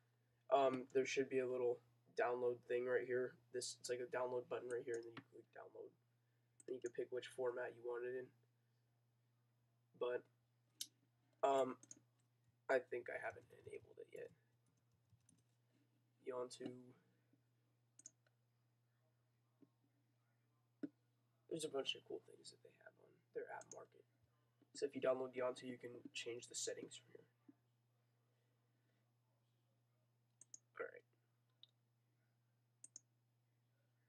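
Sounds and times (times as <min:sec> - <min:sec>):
computer mouse clicking: 0:11.8 - 0:12.0, 0:18.0 - 0:18.3, 0:30.4 - 0:30.7, 0:32.8 - 0:33.1.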